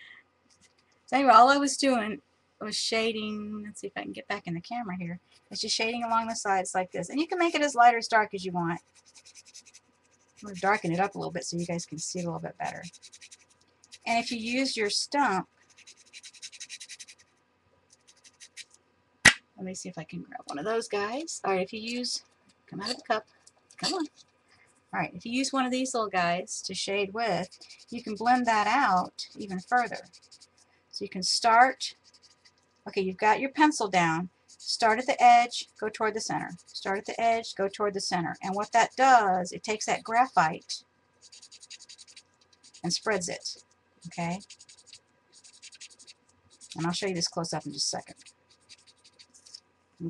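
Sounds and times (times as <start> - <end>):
pencil scratching on paper: 8.8 - 17.3, 17.9 - 18.7, 27.2 - 30.6, 31.9 - 32.6, 34.5 - 35.7, 36.4 - 37.4, 38.4 - 39.4, 41.2 - 49.6.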